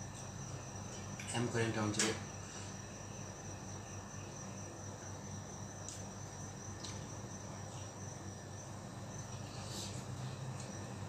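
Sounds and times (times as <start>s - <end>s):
steady low hum: 0.0s - 11.0s
chewing clicks: 6.8s - 7.1s.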